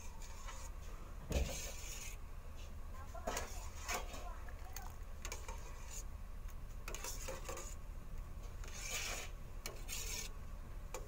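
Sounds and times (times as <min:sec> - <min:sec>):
metal spoon scraping a pot: 0:01.4 - 0:02.2, 0:03.3 - 0:04.2, 0:05.2 - 0:06.1, 0:06.8 - 0:07.8, 0:08.6 - 0:10.3.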